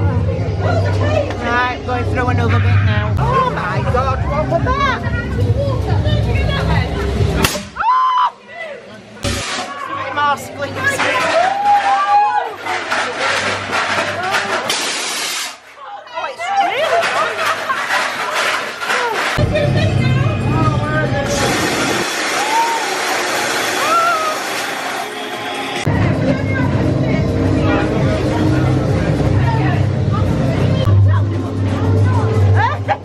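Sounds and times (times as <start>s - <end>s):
bass-heavy soundtrack: 0.0s - 7.8s, 19.4s - 22.7s, 25.6s - 33.0s
loud rushing hiss: 21.3s - 25.1s
rising-and-falling cries: 22.3s - 25.9s.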